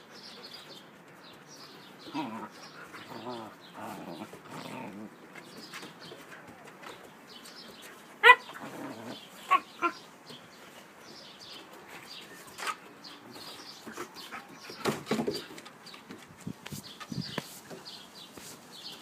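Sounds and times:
puppies growling: 0:01.9 - 0:05.3, 0:08.4 - 0:10.0.

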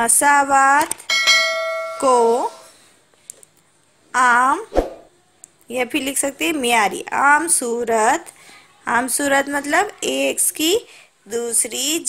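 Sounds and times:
bell ringing: 0:01.1 - 0:02.8.

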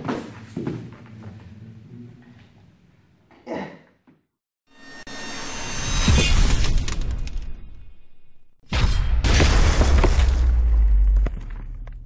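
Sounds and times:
cinematic riser whoosh: 0:04.7 - 0:09.0.

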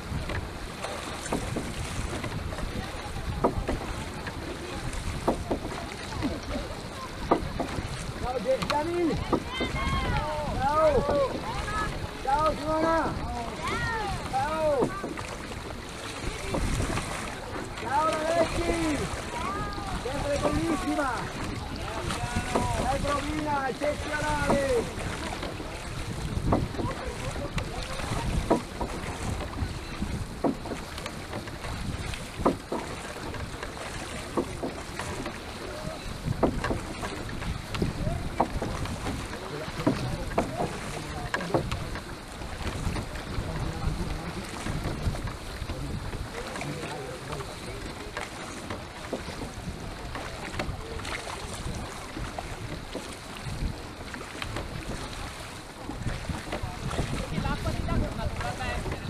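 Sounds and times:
oars knocking in wooden oarlocks: 0:00.0 - 0:59.0
water noise: 0:00.0 - 0:59.0
wind buffeting microphone: 0:00.0 - 0:59.0.

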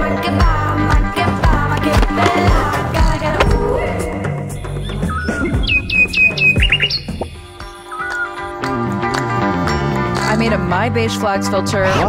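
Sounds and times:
background music: 0:00.0 - 0:12.0
high sharp bird chirps: 0:04.7 - 0:08.4.

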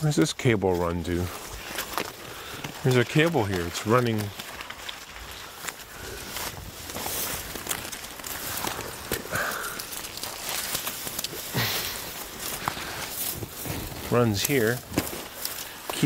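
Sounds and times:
branches and leaves rustling: 0:00.0 - 0:16.0
footsteps through brush: 0:00.0 - 0:16.0
twigs crackling: 0:00.0 - 0:16.0.

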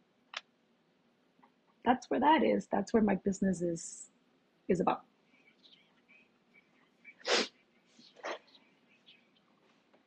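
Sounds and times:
faint room noise: 0:00.0 - 0:10.0
person sharp burst of breath: 0:07.2 - 0:07.5.

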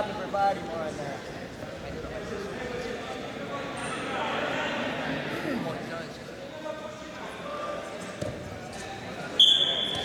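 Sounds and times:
referee's whistle blast: 0:09.4 - 0:10.0.

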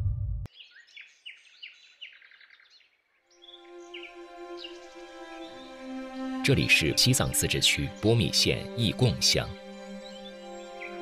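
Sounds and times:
bird chirping: 0:00.5 - 0:05.8, 0:07.2 - 0:11.0
soft background music: 0:03.3 - 0:11.0
theme music: 0:04.1 - 0:11.0.

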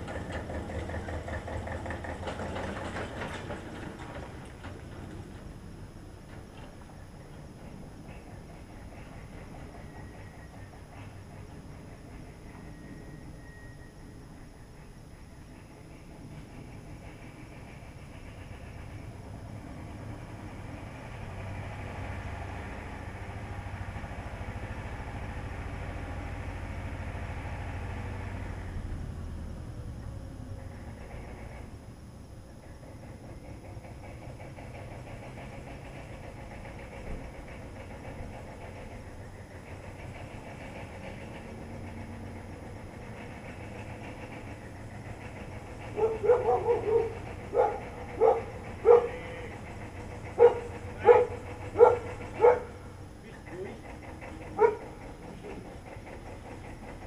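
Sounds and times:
engine running: 0:00.0 - 0:57.0.

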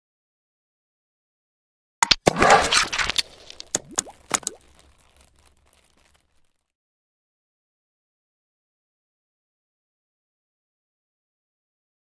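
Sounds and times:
sharp pops: 0:02.0 - 0:06.4.

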